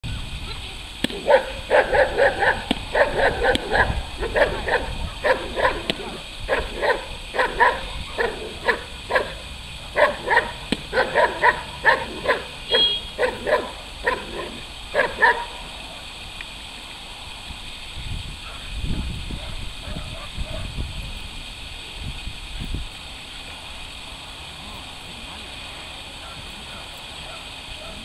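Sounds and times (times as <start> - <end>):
dog barking rapidly: 1.1 - 15.6.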